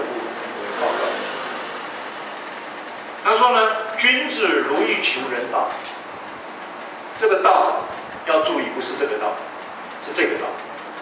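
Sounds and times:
microphone room hiss: 0.0 - 11.0.

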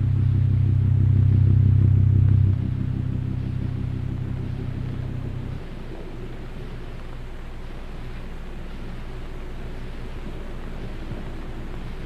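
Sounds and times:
low droning chord with flutter: 0.0 - 12.0.

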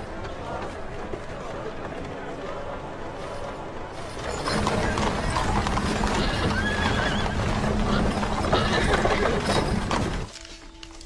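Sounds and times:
voices: 0.0 - 10.3
hooves clopping on stone: 0.0 - 11.0
music: 2.3 - 11.0
horses neighing: 4.2 - 10.3.

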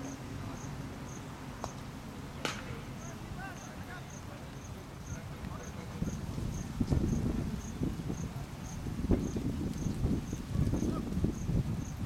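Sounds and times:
insect chirping: 0.0 - 1.8, 2.9 - 12.0
wind rumble on microphone: 5.0 - 12.0.

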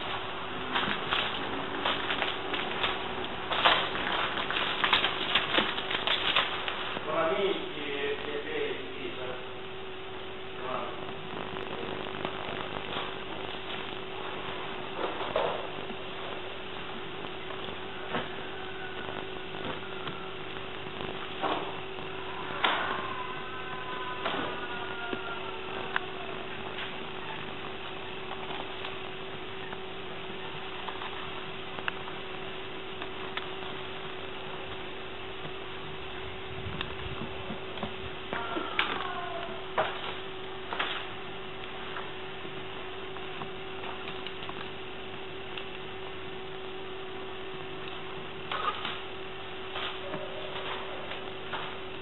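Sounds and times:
electrical hum and hiss: 0.0 - 52.0.

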